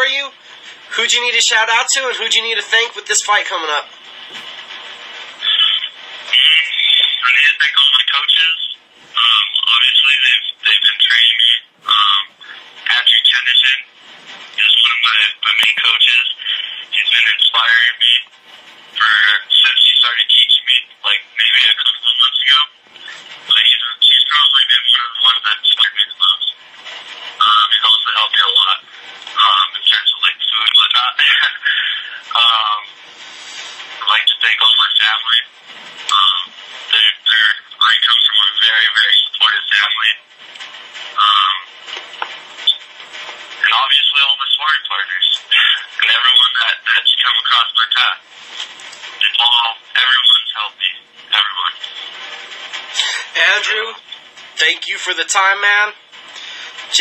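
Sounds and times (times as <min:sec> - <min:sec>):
man talking: 0:00.0 - 0:03.9, 0:05.4 - 0:13.9, 0:14.6 - 0:18.3, 0:19.0 - 0:26.6, 0:27.4 - 0:40.2, 0:41.1 - 0:41.7, 0:43.6 - 0:48.2, 0:49.1 - 0:52.0, 0:53.0 - 0:57.0.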